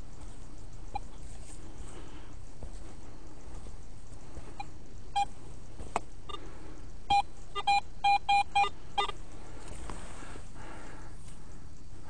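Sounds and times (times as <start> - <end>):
metal detector beeps: 4.6 - 5.4, 7.1 - 9.2.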